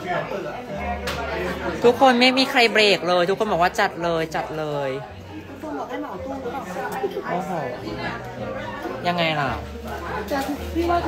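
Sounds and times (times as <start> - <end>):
soft talking and chatter: 0.0 - 11.0.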